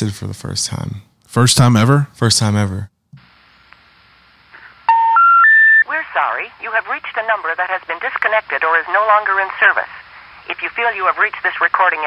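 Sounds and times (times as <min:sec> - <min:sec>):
telephone tone beep: 0:04.9 - 0:05.9.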